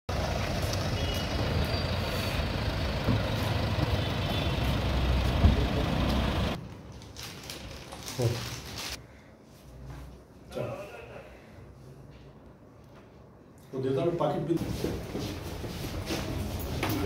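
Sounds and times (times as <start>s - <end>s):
vehicle engines in street traffic: 0.1s - 6.8s, 14.6s - 17.0s.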